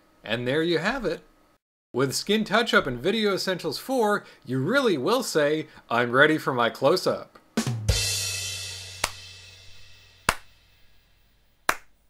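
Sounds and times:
sharp snaps: 9.0 - 9.3, 10.2 - 10.6, 11.7 - 12.0.

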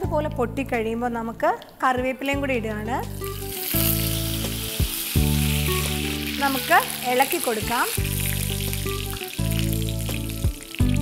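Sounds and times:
background music with held notes: 0.0 - 11.0
leaves sizzling in hot oil: 3.0 - 11.0.

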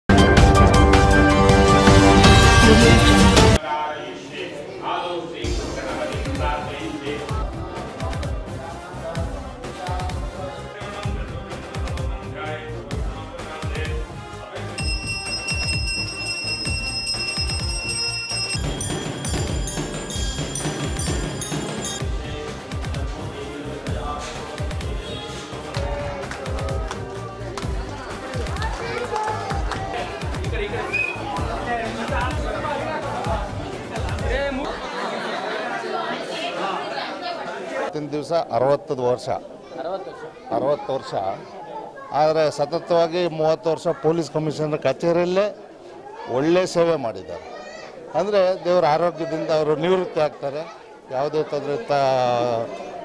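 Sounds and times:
crowd chatter: 1.2 - 53.0
bell ringing continuously: 14.8 - 22.1
drum strikes: 14.8 - 22.1.

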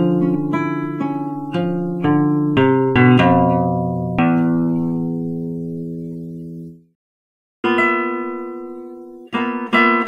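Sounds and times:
classical guitar playing: 0.0 - 7.0, 7.6 - 10.0.

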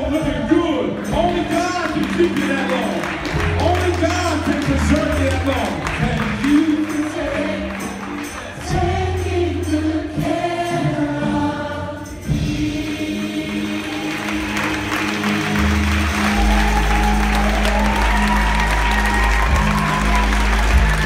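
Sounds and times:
audience applause and cheering: 0.0 - 9.1, 12.7 - 21.0
band playing: 0.0 - 21.0
gospel choir singing: 6.2 - 21.0.

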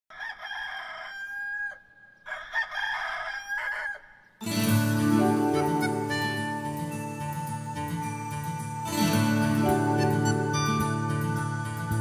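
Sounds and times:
rooster crowing: 0.1 - 4.2.

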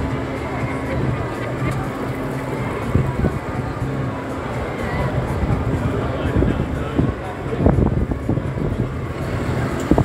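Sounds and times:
bus engine rumbling: 0.0 - 10.0
street traffic: 0.0 - 10.0
wind on microphone: 5.1 - 10.0.

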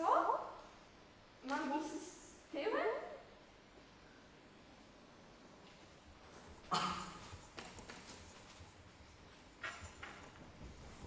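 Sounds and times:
footsteps on wooden floor: 6.2 - 11.0.

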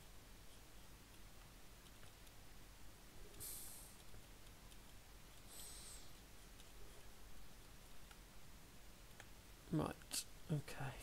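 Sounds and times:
faint high hiss: 0.0 - 11.0
faint room hum: 0.0 - 11.0.

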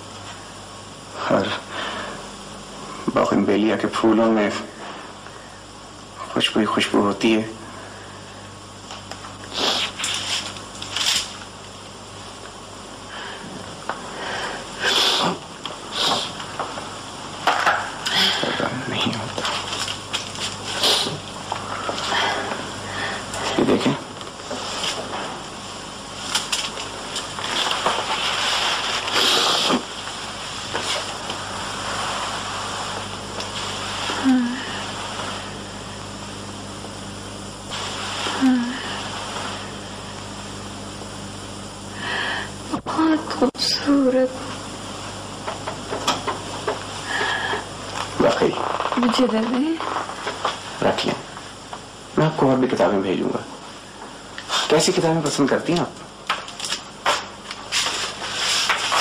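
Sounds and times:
tape hiss and hum: 0.0 - 59.0.

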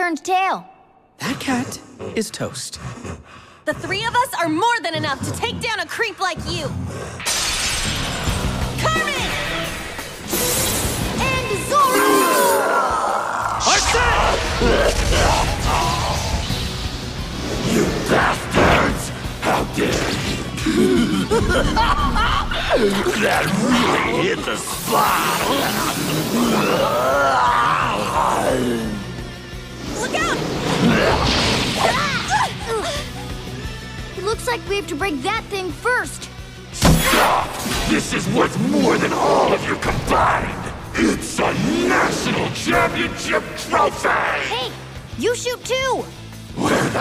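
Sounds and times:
background music: 0.0 - 47.0
shattering crash: 7.3 - 8.7
battle music: 13.6 - 22.3.

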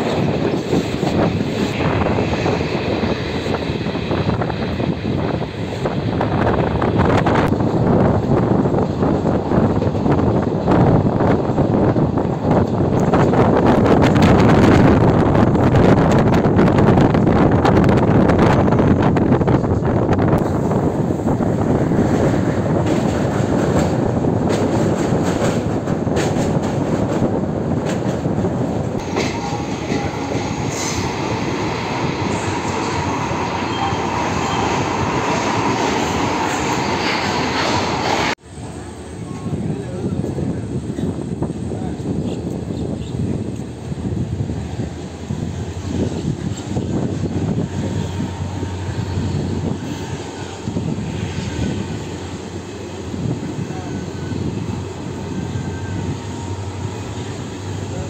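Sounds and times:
train wheels on rails rushing: 0.0 - 58.0.

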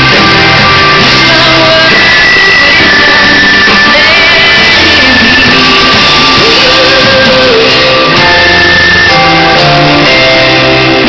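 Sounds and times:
electric guitar long high notes: 0.0 - 11.0
keyboards: 0.0 - 11.0.

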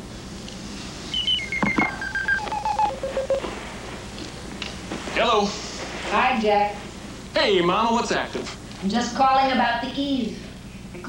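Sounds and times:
telephone dialing tones: 1.1 - 3.4.

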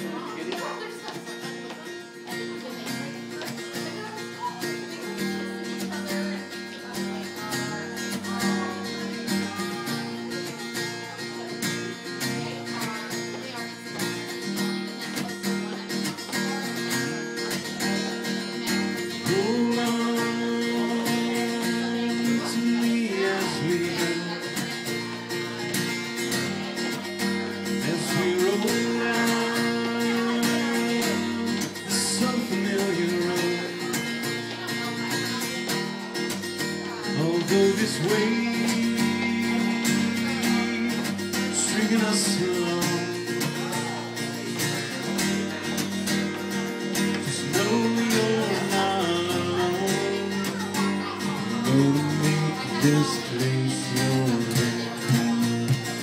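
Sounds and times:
acoustic guitars strumming: 0.0 - 56.0.

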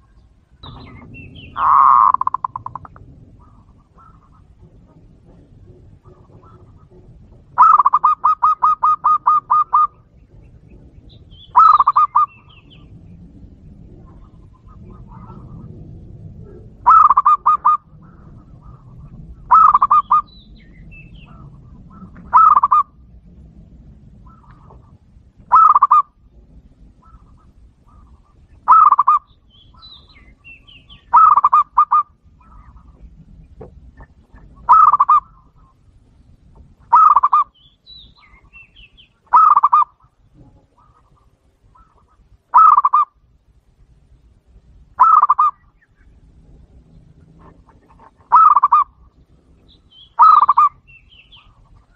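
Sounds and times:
dove cooing: 0.0 - 13.0, 13.7 - 23.2, 24.1 - 35.8, 36.8 - 43.2, 45.0 - 45.8, 46.8 - 51.9.

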